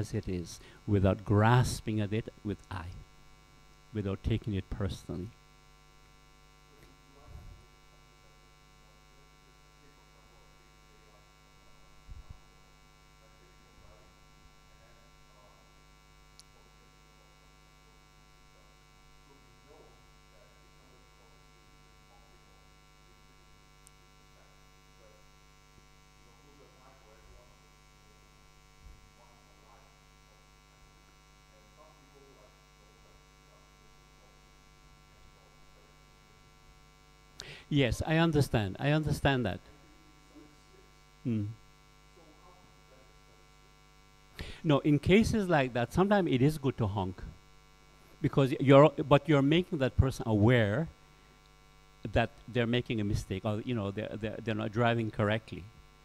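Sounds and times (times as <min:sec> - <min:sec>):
electrical mains hum: 0:00.0 - 0:56.0
faint voice talking: 0:37.7 - 0:41.6.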